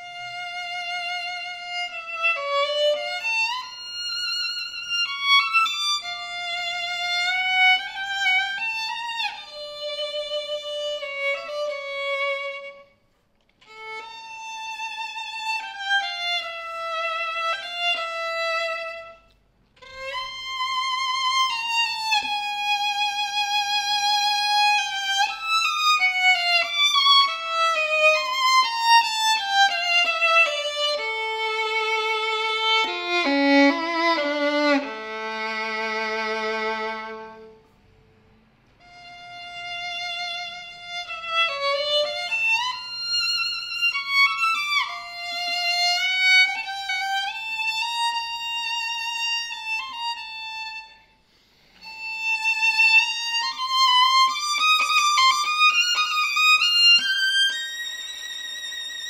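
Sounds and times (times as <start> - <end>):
solo violin melody: 0.0 - 59.0.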